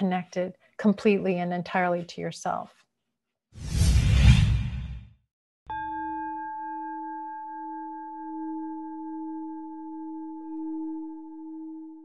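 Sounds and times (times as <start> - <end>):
loud whoosh: 3.6 - 5.1.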